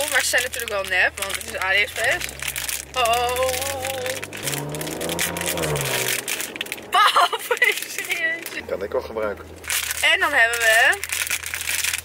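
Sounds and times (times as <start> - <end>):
plastic mailer bag crinkling and tearing: 0.0 - 12.0.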